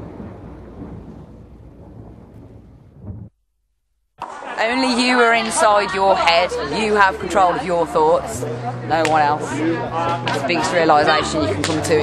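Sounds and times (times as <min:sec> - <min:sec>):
low thunder-like rumble: 0:00.0 - 0:03.4.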